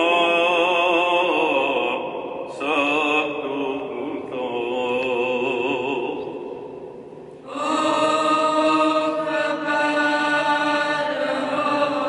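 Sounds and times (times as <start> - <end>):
liturgical chant in large church: 0.0 - 12.0.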